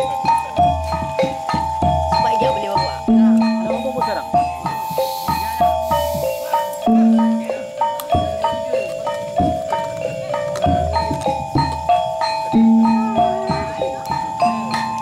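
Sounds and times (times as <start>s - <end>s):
metal keyed percussion melody: 0.0s - 15.0s
sharp drum beats: 0.0s - 15.0s.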